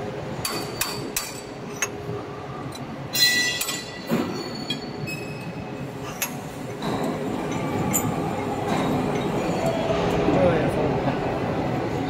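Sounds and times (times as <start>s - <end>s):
workshop machinery running: 0.0s - 12.0s.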